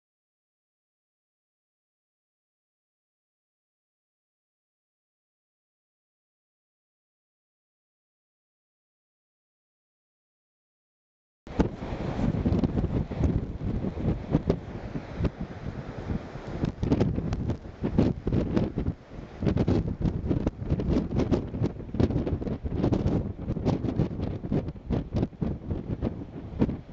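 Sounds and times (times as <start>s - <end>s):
wind buffeting microphone: 11.5s - 26.9s.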